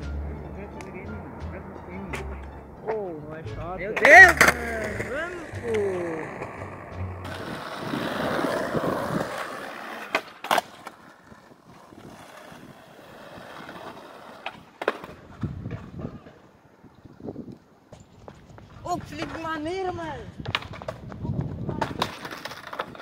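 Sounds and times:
skateboard wheels rolling on concrete: 0.0 - 23.0
skateboard clacks: 3.9 - 16.5, 20.4 - 23.0.

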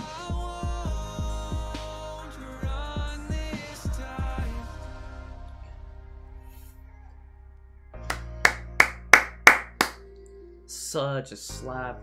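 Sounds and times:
loud hand claps: 8.0 - 10.0.

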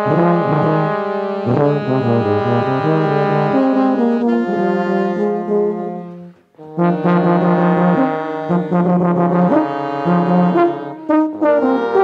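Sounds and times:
jazz horn section chords: 0.0 - 12.0.

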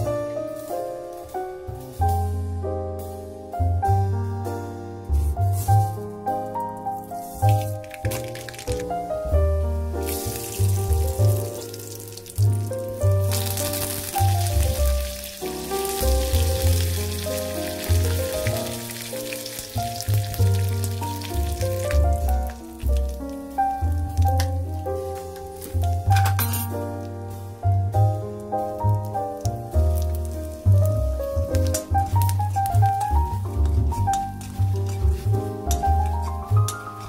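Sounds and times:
background music: 0.0 - 37.0
hot oil sizzling in a wok: 7.0 - 8.8, 9.9 - 37.0.

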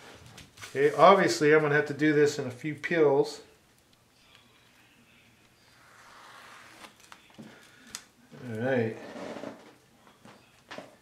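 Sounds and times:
paper peeling soft tearing rustle: 5.6 - 8.8.

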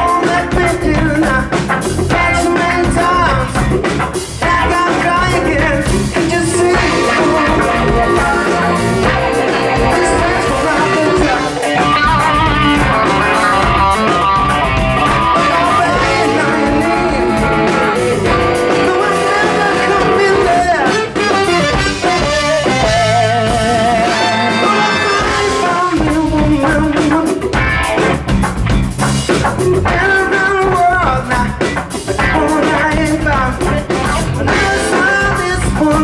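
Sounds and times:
electric guitar with bent notes: 0.0 - 36.0
funk rock band playing: 0.0 - 36.0.

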